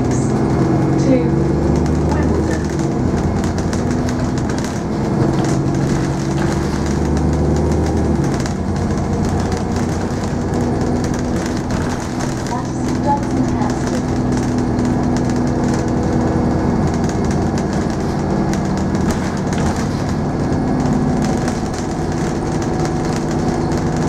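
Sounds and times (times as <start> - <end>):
bus engine drone: 0.0 - 24.0
road and cabin noise: 0.0 - 24.0.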